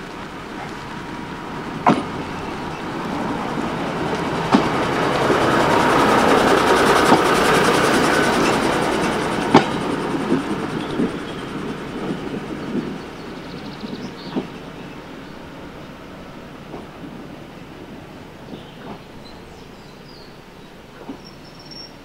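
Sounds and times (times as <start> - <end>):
diesel railcar rolling past: 0.0 - 22.0
wheels clicking over rail joints: 0.0 - 22.0.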